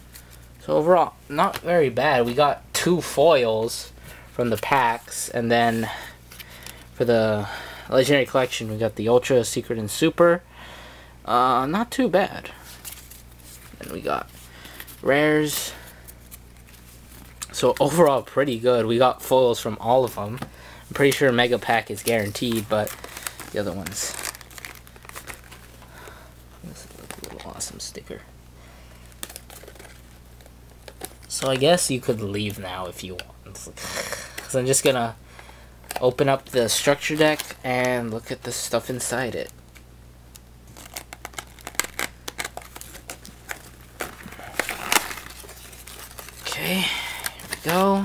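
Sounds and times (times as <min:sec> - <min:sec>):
plastic packaging crinkling: 0:20.9 - 0:28.2, 0:28.9 - 0:32.7, 0:40.7 - 0:48.0.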